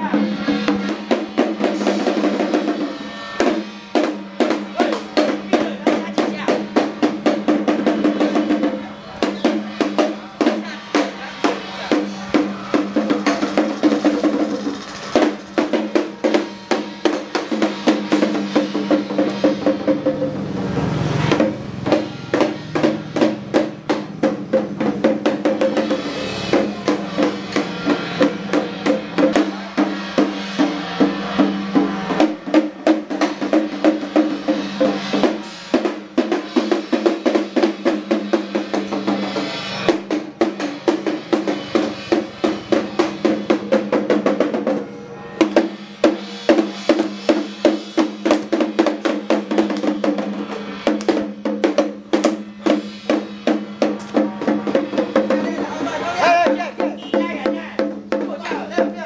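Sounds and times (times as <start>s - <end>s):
hand drums beaten rapidly: 0.0s - 59.0s.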